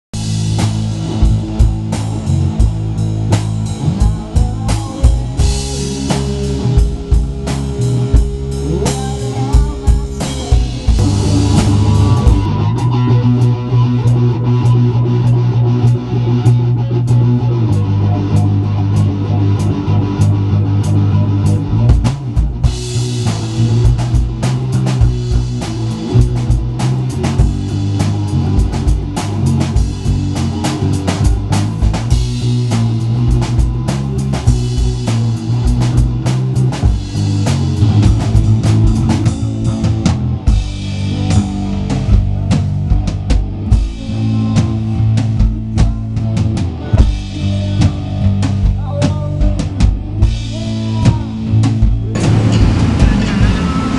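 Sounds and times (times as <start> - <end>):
heavy bass line: 0.0 - 53.9
drum kit hits: 0.1 - 14.1, 21.7 - 53.9
rock band playing: 0.1 - 53.9
electric guitar: 0.2 - 53.9.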